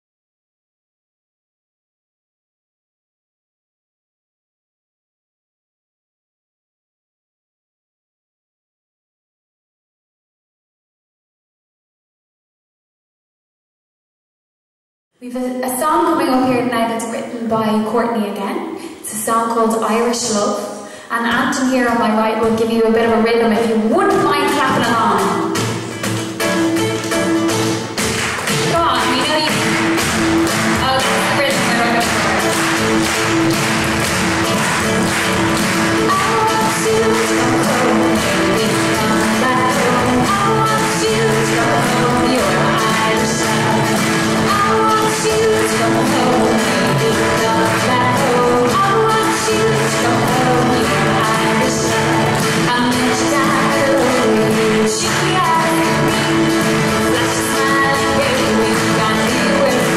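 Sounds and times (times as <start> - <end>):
woman singing: 15.2 - 25.6, 28.7 - 29.8, 30.7 - 32.6, 36.0 - 59.9
acoustic guitar strumming: 21.3 - 59.9
frame drum tapping: 24.1 - 59.9.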